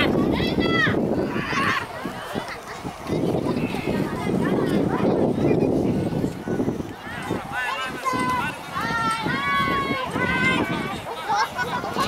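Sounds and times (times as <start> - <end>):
children shouting: 0.0 - 5.6, 7.0 - 12.0.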